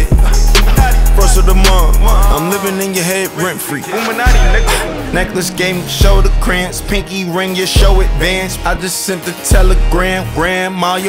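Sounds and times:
pitch-bent voice snippets: 3.5s - 7.2s
deep sustained bass: 4.3s - 8.8s.

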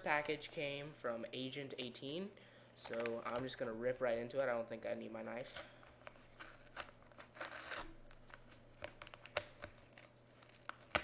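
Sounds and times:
paper envelope tearing: 6.3s - 11.0s
sharp paper snap: 10.5s - 11.0s.

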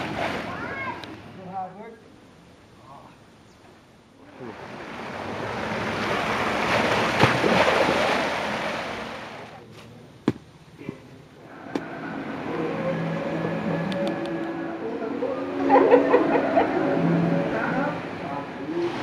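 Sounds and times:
steady hum with pitched tones: 10.6s - 18.9s.

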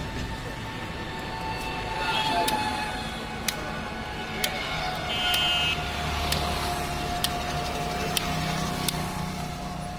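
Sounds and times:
roadside traffic: 0.0s - 9.9s
sharp ticking: 6.2s - 9.1s.

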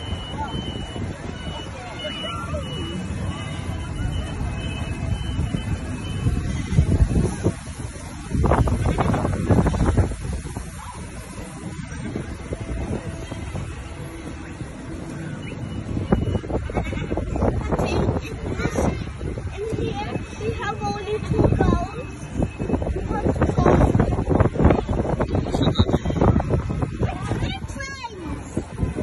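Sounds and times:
ride train rumbling on track: 0.0s - 29.0s
wind buffeting microphone: 3.0s - 29.0s.

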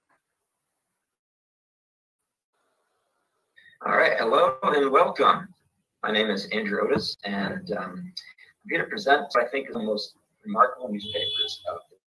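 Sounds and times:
man speaking: 3.8s - 12.0s.

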